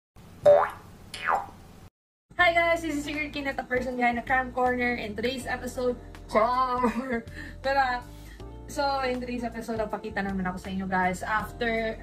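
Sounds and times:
cartoon springy boing: 0:00.4 - 0:01.6.

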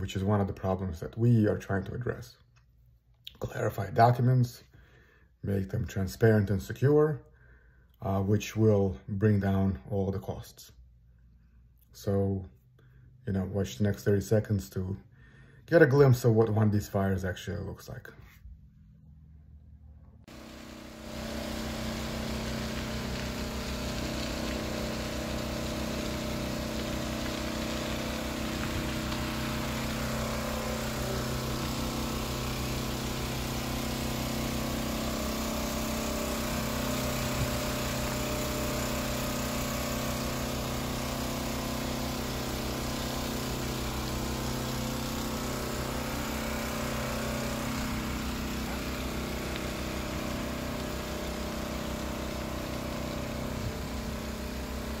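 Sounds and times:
engine running steadily: 0:20.3 - 0:55.0.

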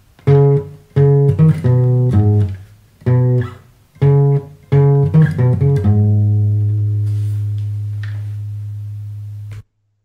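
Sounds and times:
acoustic guitar note ringing: 0:00.2 - 0:09.6.

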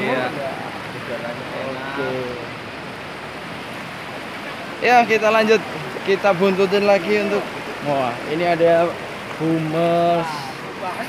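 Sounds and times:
river rushing over rocks: 0:00.0 - 0:11.0.

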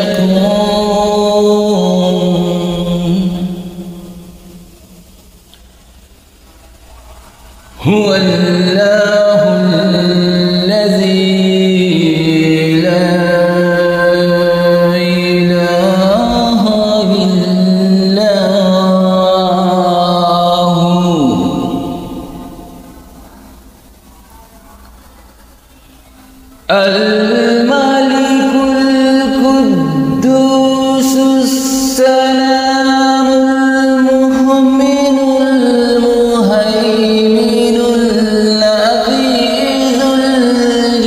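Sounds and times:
man chanting melodically: 0:00.0 - 0:05.2, 0:07.6 - 0:23.6, 0:26.6 - 0:41.0.

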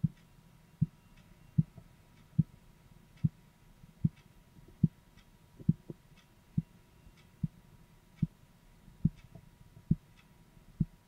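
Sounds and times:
dull heartbeat thumps in stethoscope: 0:05.6 - 0:06.0.

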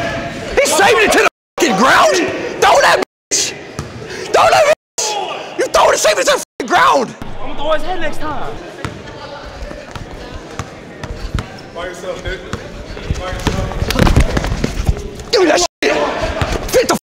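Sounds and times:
people talking: 0:04.4 - 0:17.0.

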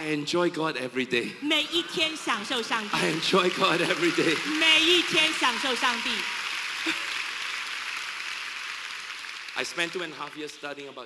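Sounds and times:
large congregation applauding: 0:01.8 - 0:11.0.

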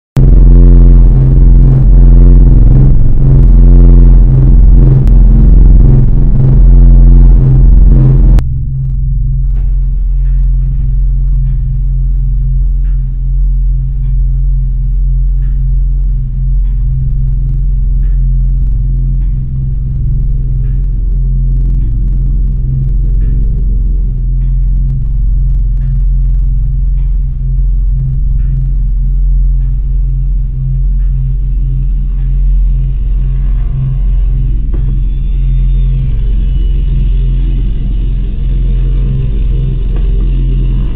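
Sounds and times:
deep rumbling drone: 0:00.0 - 0:40.9.

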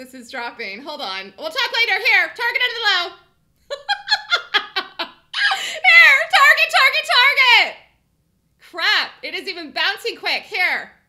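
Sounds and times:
woman laughing: 0:03.7 - 0:06.2.

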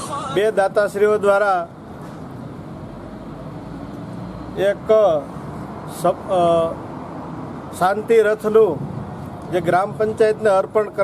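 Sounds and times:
man speaking: 0:00.0 - 0:01.7, 0:09.5 - 0:11.0
street hum: 0:00.0 - 0:11.0.

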